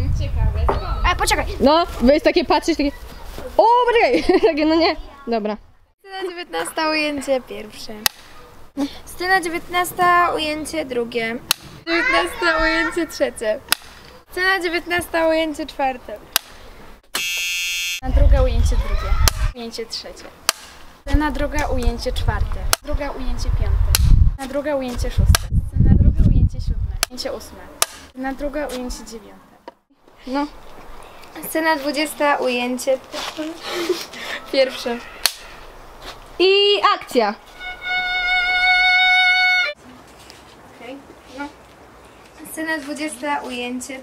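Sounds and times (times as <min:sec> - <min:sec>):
buzzer-like electronic beep: 0:17.2 - 0:18.0
violin long bowed note: 0:37.6 - 0:39.8.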